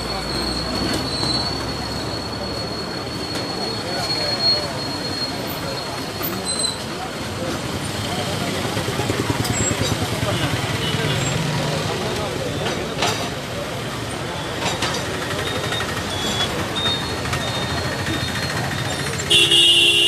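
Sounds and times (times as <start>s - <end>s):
crowd talking and shouting: 0.0s - 20.0s.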